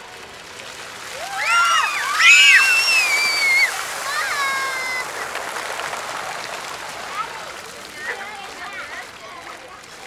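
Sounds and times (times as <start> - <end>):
fountain water splashing on pavement: 0.0 - 10.0.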